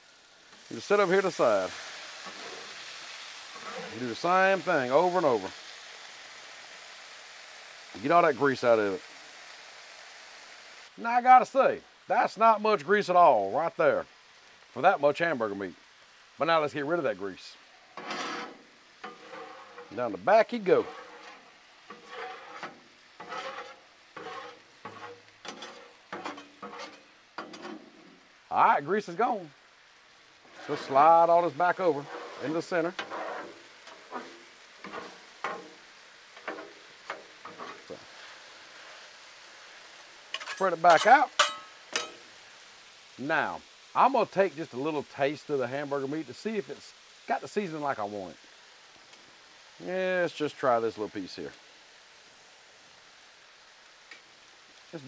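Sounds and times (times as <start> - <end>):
meat and vegetables sizzling on griddle: 0.0 - 55.0
metal spatulas scraping steel: 2.2 - 2.8, 3.6 - 4.0, 18.0 - 20.0, 20.8 - 28.1, 32.0 - 35.8, 36.4 - 37.9, 40.3 - 42.2.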